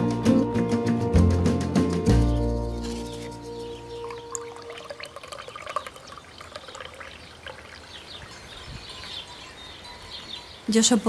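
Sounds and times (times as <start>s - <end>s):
small birds chirping: 2.0s - 11.0s
tea trickling into mug: 3.8s - 8.4s.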